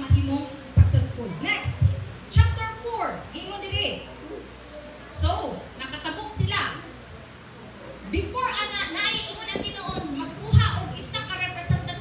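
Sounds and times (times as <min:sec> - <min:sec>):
woman preaching: 0:00.0 - 0:04.1, 0:05.1 - 0:06.9, 0:08.1 - 0:12.0.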